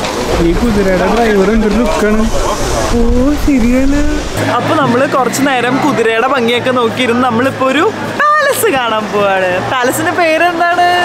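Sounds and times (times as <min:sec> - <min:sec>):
woman talking: 0:04.4 - 0:11.0.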